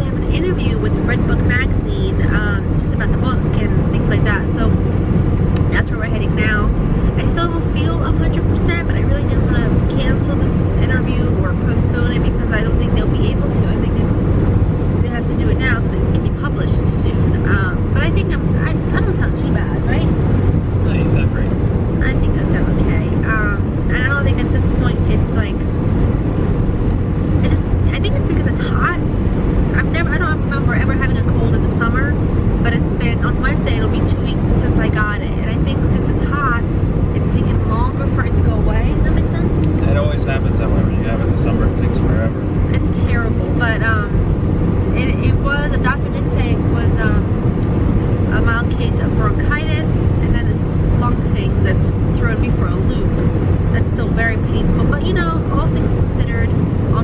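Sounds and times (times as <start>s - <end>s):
woman talking: 0.0s - 4.8s, 5.6s - 14.2s, 15.0s - 20.1s, 22.0s - 25.7s, 27.4s - 29.0s, 29.7s - 39.8s, 42.7s - 44.2s, 44.9s - 47.3s, 48.3s - 57.0s
car road and engine noise: 0.0s - 57.0s.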